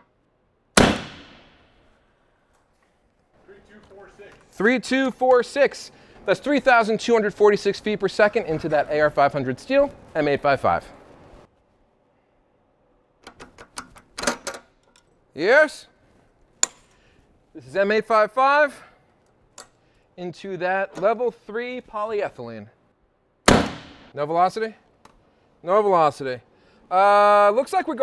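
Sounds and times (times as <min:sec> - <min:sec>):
rifle shot echo: 0:00.8 - 0:01.8, 0:23.5 - 0:24.1
sharp clicks and knocks: 0:13.2 - 0:15.1.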